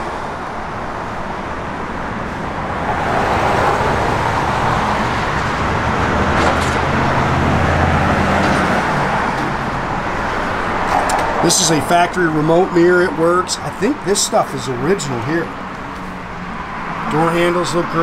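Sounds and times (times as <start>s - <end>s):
passing vehicle engine and tyres: 0.0s - 18.0s.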